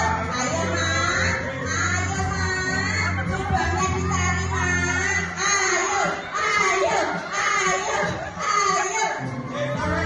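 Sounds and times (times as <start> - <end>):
children calling out and shouting: 0.0 - 9.2.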